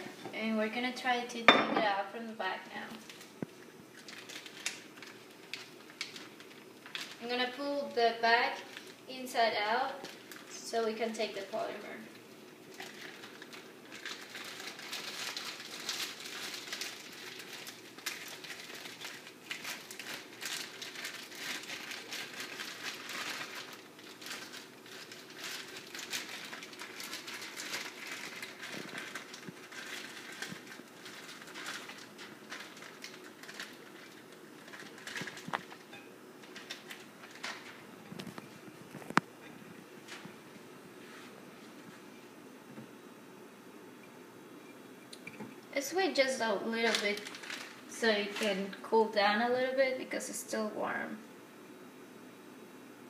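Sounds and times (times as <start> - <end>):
plastic bag crinkling: 2.7 - 40.6, 45.1 - 49.2.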